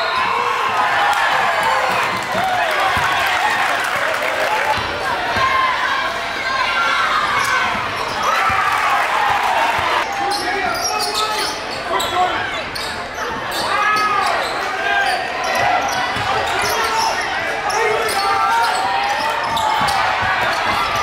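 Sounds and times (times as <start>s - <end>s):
crowd chatter: 0.0s - 21.0s
sneaker squeaks: 10.1s - 21.0s
basketball bouncing on wooden court: 19.4s - 21.0s.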